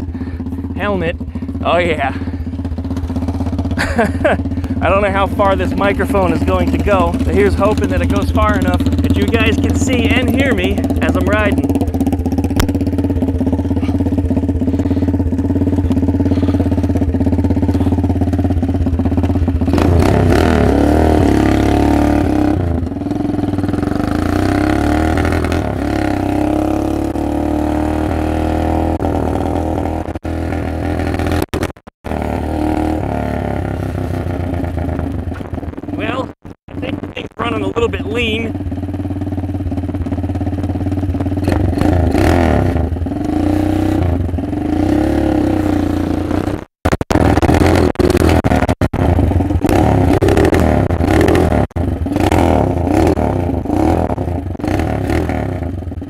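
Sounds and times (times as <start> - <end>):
minibike engine idling and revving: 0.0 - 56.0.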